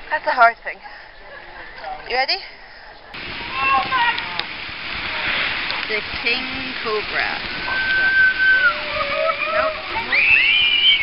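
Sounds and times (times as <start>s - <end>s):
water rushing: 3.2s - 11.0s
people calling out: 3.4s - 4.4s, 7.2s - 11.0s.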